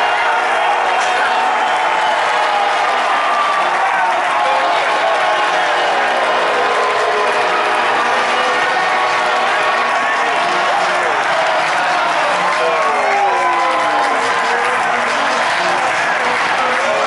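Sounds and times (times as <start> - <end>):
crowd clapping: 0.0 - 17.0
stadium crowd cheering: 0.0 - 17.0.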